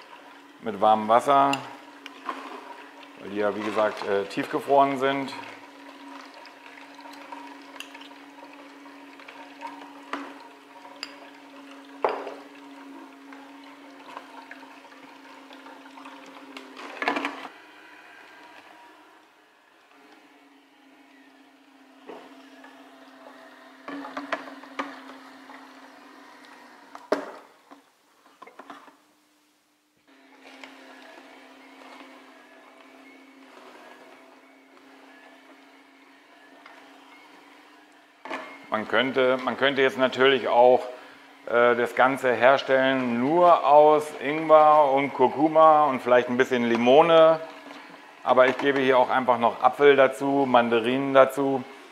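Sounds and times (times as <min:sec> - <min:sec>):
juicer motor humming: 0:00.0 - 0:29.0, 0:30.0 - 0:51.9.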